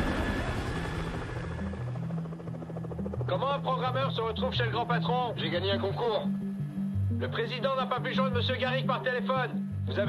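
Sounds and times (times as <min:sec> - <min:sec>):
helicopter rotor chopping: 0:00.0 - 0:08.3.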